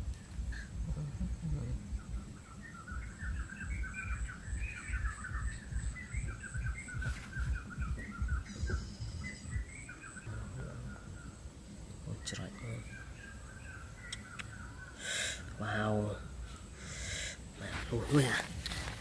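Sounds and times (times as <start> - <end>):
low rumble: 0.0 - 12.0
birds chirping: 0.0 - 19.0.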